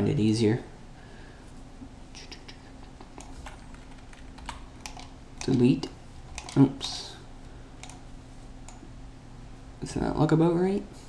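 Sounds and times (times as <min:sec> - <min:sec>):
low steady hum: 0:00.0 - 0:11.0
computer clicks: 0:03.0 - 0:05.7, 0:06.3 - 0:07.0, 0:07.8 - 0:08.0.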